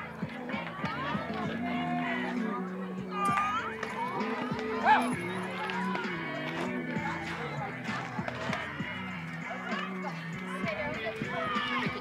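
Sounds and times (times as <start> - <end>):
people calling and shouting: 0.0 - 12.0.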